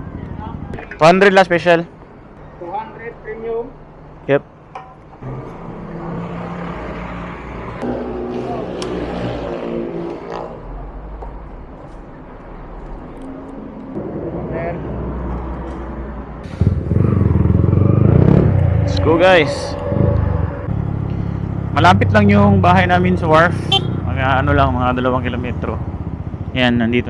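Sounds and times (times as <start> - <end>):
motorcycle engine pulling away: 16.4 - 22.2
indistinct voices: 16.6 - 23.5.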